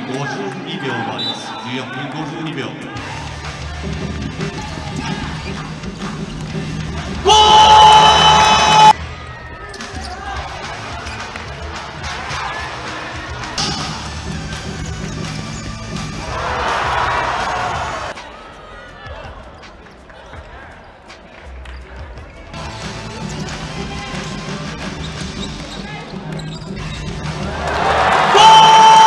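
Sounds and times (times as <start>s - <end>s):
crowd noise: 0.0s - 29.0s.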